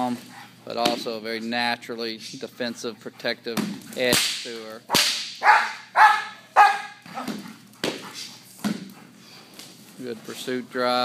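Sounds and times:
sharp crack: 3.6s - 5.4s
dog barking: 5.4s - 7.3s.

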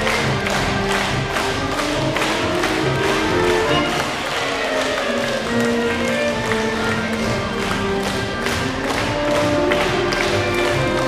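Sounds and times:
military brass band playing: 0.0s - 11.0s.

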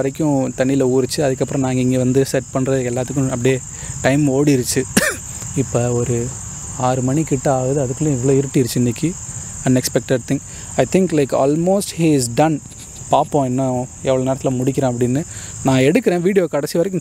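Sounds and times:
crickets chirring: 0.0s - 17.0s
man talking: 0.0s - 17.0s.

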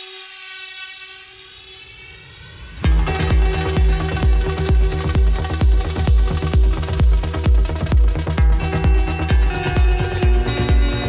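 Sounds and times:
sustained synthesizer chord: 2.8s - 11.0s.

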